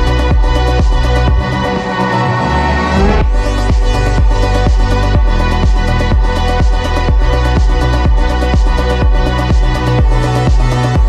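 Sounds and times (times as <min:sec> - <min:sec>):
kick drum beat: 0:00.0 - 0:01.5, 0:03.1 - 0:11.0
electronic dance music: 0:00.0 - 0:11.0
rising synth sweep: 0:00.0 - 0:11.0
steady synth tones: 0:00.0 - 0:11.0.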